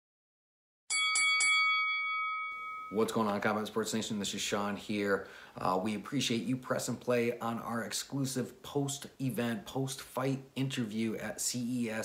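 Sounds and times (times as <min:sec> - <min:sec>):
bell-like chime ringing: 0:00.9 - 0:03.4.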